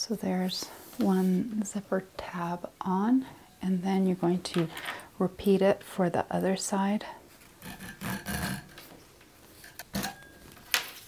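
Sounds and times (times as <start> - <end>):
zipper scraping and rasping: 7.4 - 8.8.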